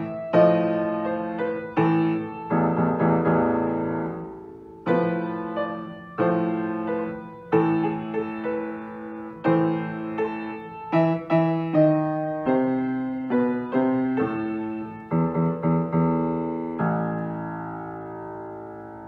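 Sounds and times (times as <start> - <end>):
piano chords: 0.0 - 19.0.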